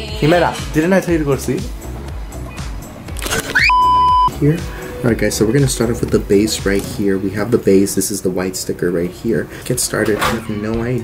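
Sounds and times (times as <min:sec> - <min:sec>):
electronic censor bleep: 0:03.5 - 0:04.3.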